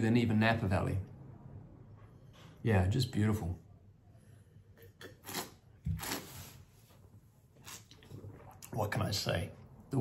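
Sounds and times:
wine sipping and slurping: 0:04.8 - 0:06.8, 0:07.5 - 0:09.0.

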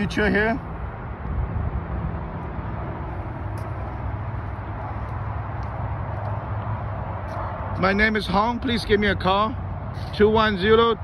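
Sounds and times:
constant low hum: 0:00.0 - 0:11.0
vehicle traffic rumble and hiss: 0:00.0 - 0:11.0.

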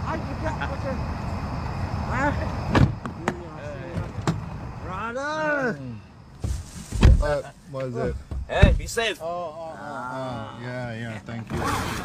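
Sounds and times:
car doors shutting: 0:02.7 - 0:04.6.

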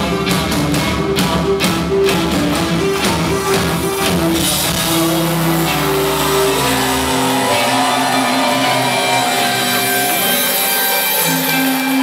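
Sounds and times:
rock band droning guitar chords: 0:00.0 - 0:12.0.

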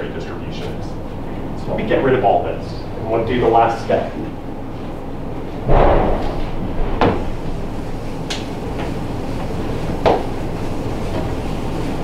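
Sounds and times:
dull thump: 0:05.7 - 0:07.3.

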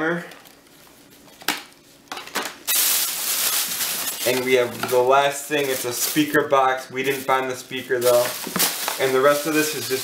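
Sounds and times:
plastic bag rustling: 0:02.6 - 0:10.0.

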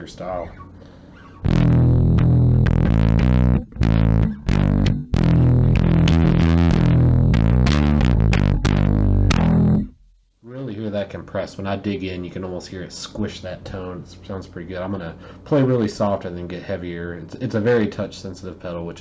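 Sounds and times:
overdriven electric bass: 0:01.2 - 0:10.2.

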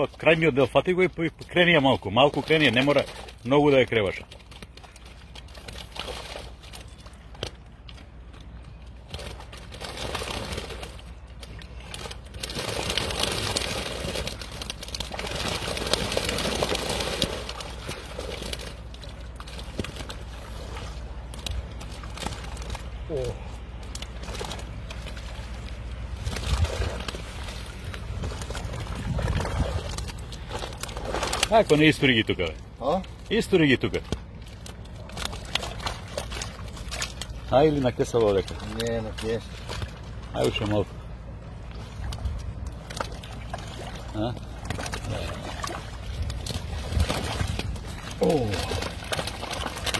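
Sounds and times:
river water sloshing and splashing: 0:00.0 - 0:49.9.

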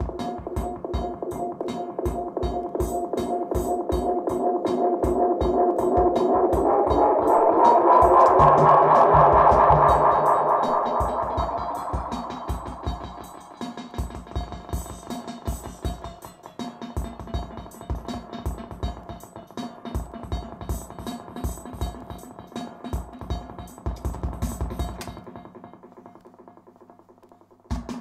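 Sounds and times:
drum machine pattern with tape echo: 0:00.0 - 0:28.0
echo feedback tone gliding up: 0:05.6 - 0:13.7.

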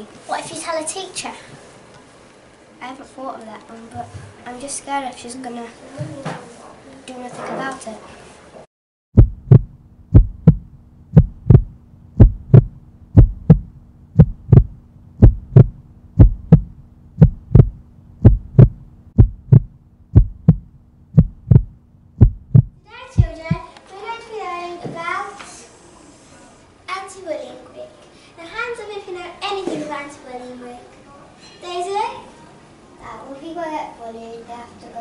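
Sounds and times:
heartbeat thumps: 0:09.1 - 0:23.6
low hum: 0:09.2 - 0:23.6.

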